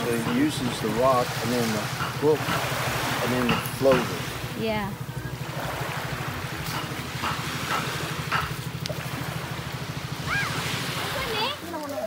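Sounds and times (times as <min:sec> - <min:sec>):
small engine running: 0:00.0 - 0:12.0
small waves washing on shore: 0:00.0 - 0:12.0.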